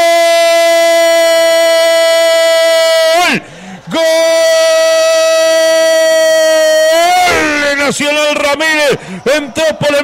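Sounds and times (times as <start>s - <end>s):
commentator long held shout: 0.0s - 10.0s
commentator rapid speech: 3.0s - 10.0s.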